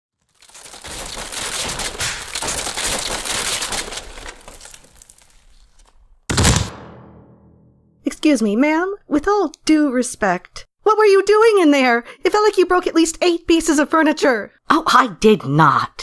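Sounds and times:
furniture crashing and breaking: 0.2 - 5.5, 6.3 - 7.1.

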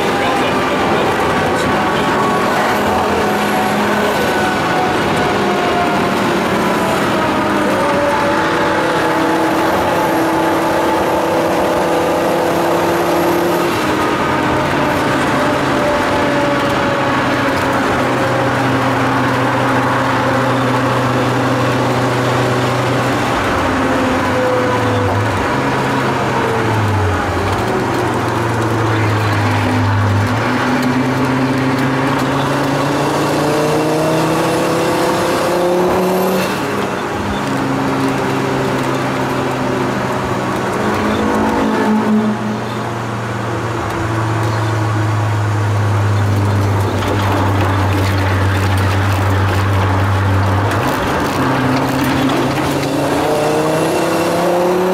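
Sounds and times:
car engine revving inside cabin: 0.0 - 54.9.

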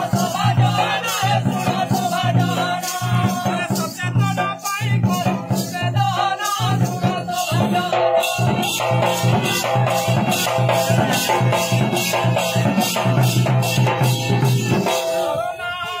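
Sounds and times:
rattle shaking: 0.0 - 12.1
folk singing: 0.0 - 16.0.

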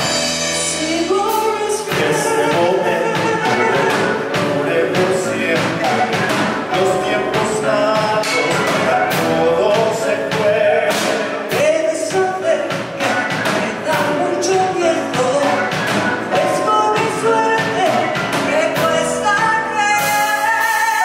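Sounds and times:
instrumental accompaniment: 0.0 - 21.0
man and woman singing duet: 0.0 - 21.0
women's backing vocals: 1.1 - 21.0.

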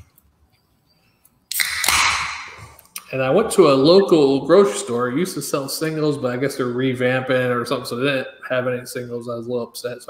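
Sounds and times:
beer can opening pop and hiss: 1.5 - 2.8.

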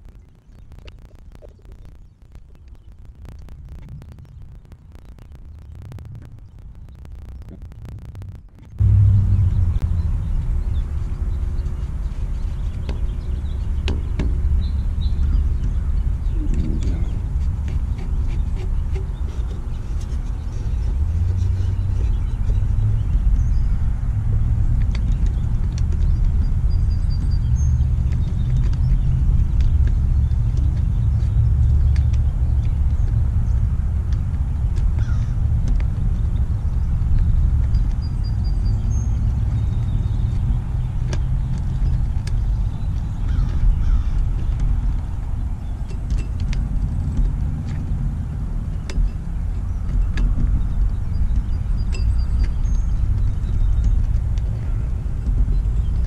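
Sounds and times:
low outdoor rumble: 0.0 - 56.0
bird chirps: 37.6 - 45.0.

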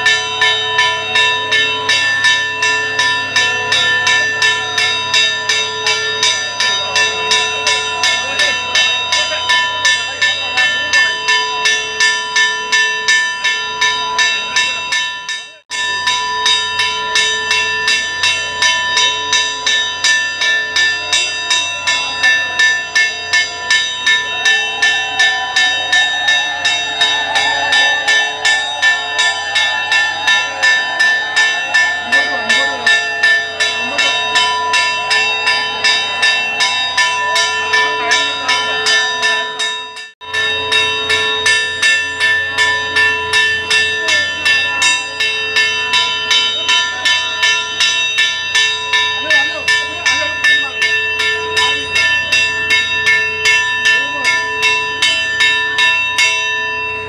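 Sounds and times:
crowd voices: 0.0 - 57.0
temple bell ringing: 0.0 - 57.0.

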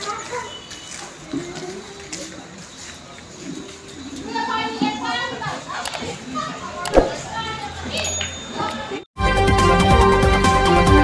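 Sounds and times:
chatter of voices: 0.0 - 9.1
sharp knock: 6.9 - 7.3.

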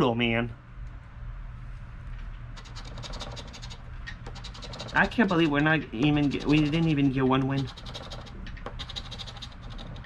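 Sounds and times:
coin scratching ticket: 2.6 - 10.0.

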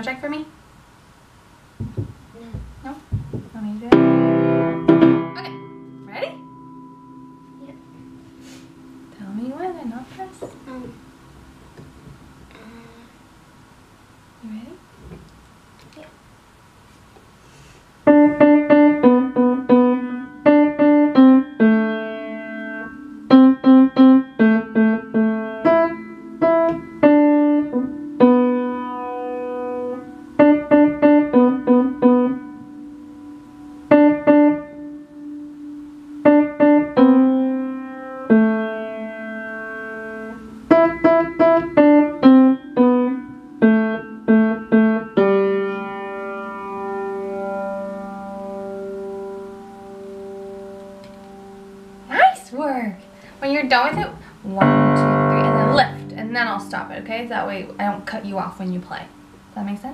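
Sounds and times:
piano piece: 1.8 - 12.6, 18.0 - 59.9.

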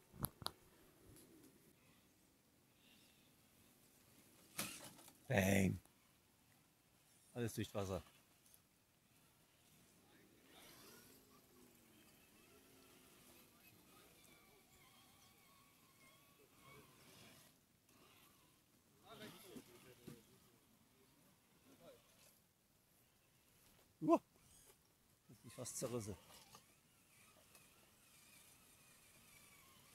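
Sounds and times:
man's spoken hesitation: 24.0 - 24.2.

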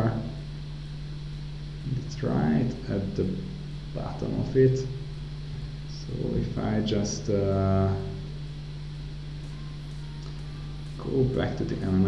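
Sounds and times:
low electrical hum: 0.0 - 12.0
person speaking: 1.8 - 5.0, 5.9 - 8.4, 9.4 - 12.0.

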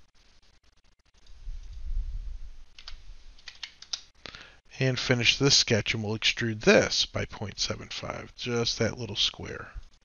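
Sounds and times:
computer keyboard taps: 2.8 - 4.0.

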